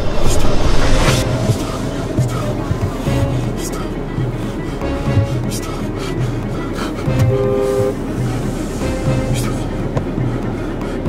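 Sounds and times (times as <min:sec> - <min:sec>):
music with low beat: 0:00.1 - 0:11.0
car horn two-note blast: 0:07.1 - 0:08.1.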